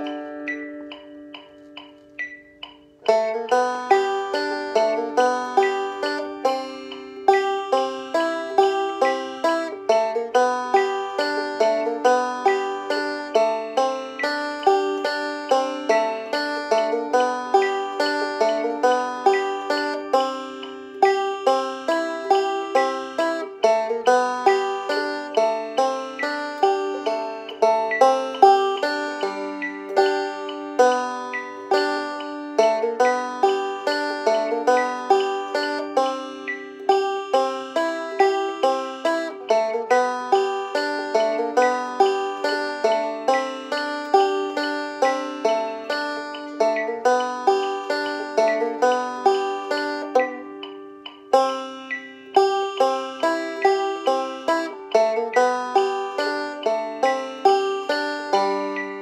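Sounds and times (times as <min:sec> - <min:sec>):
fingerpicked banjo: 0:00.0 - 0:59.0.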